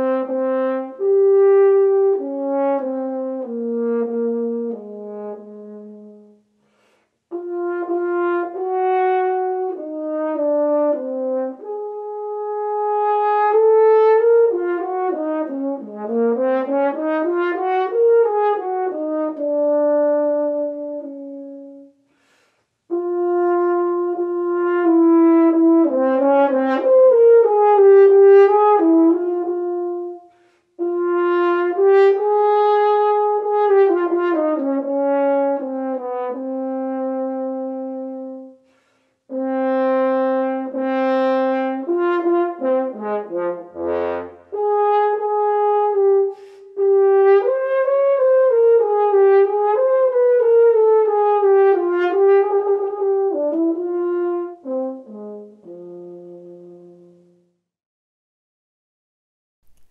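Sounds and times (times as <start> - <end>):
solo french horn: 0.0 - 57.8
player breathing: 6.6 - 7.3, 22.1 - 22.8, 46.3 - 46.8.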